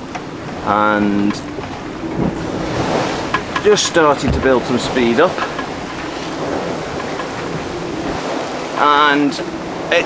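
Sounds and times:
water rushing past hull: 0:00.0 - 0:10.0
wind buffeting microphone: 0:00.0 - 0:10.0.

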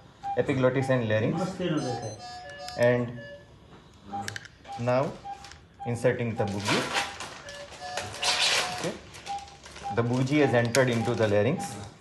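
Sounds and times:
operating room background noise: 0:00.0 - 0:12.0
faint electronic beeps: 0:00.2 - 0:06.8
man speaking: 0:00.4 - 0:03.3, 0:09.8 - 0:12.0.

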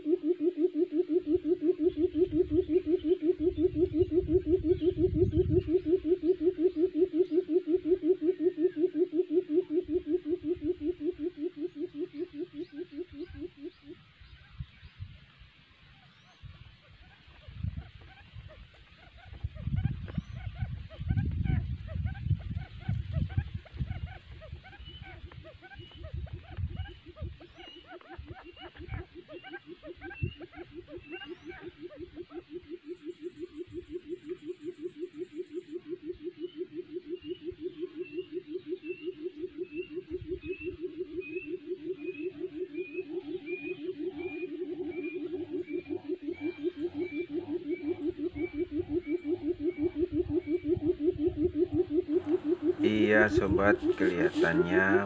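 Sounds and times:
quail purring call: 0:00.0 - 0:55.0.

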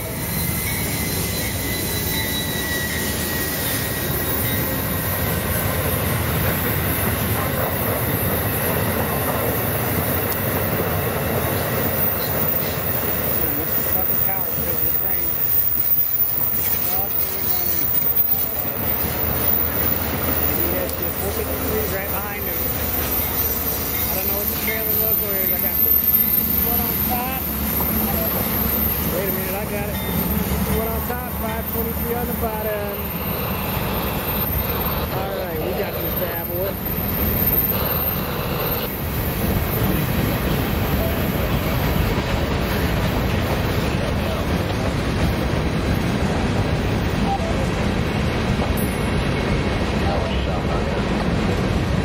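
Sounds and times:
train wheels on rails: 0:00.0 - 0:52.0.

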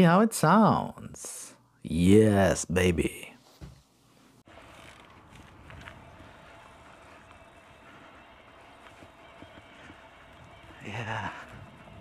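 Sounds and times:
bike tyres rumbling over grass: 0:04.5 - 0:12.0.

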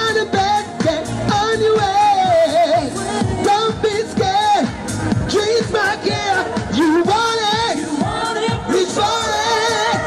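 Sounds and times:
backing music: 0:00.0 - 0:10.0
person singing into microphone: 0:00.0 - 0:10.0.

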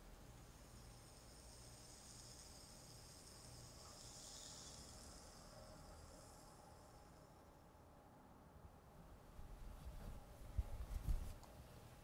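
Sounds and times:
ear candle burning hiss: 0:00.0 - 0:07.7
low hum: 0:00.0 - 0:11.2.

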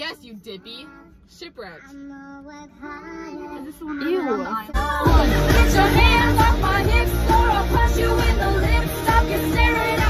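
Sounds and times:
girl singing: 0:00.7 - 0:10.0.

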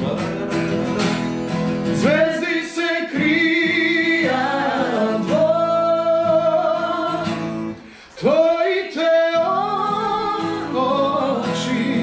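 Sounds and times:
strummed acoustic guitar: 0:00.0 - 0:12.0
man and woman singing together: 0:02.0 - 0:12.0.

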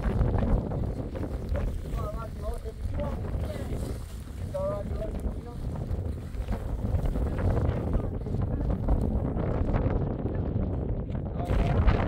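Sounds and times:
plastic tarp crinkling and rustling: 0:00.0 - 0:08.2
wind buffeting microphone: 0:00.0 - 0:12.0.

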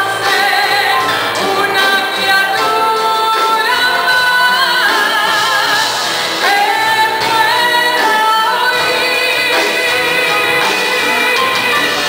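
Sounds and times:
live band with bass guitar: 0:00.0 - 0:12.0
woman singing into a microphone: 0:00.0 - 0:12.0.

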